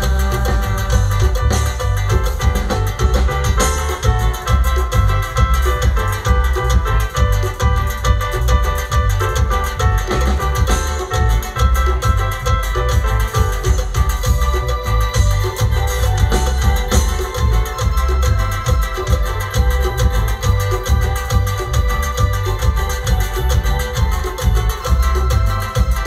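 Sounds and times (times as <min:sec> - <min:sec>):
live band dance music: 0:00.0 - 0:26.0
steady bass beat: 0:00.0 - 0:26.0.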